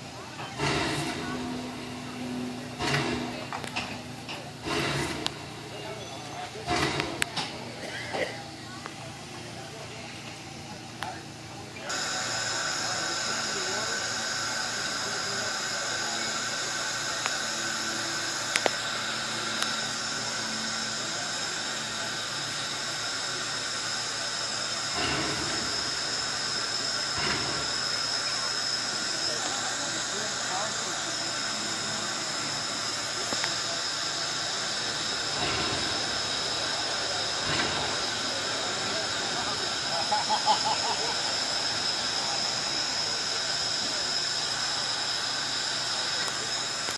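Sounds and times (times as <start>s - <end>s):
deep locomotive puffs: 0.0s - 7.9s, 8.8s - 46.9s
steam locomotive hissing: 0.0s - 46.9s.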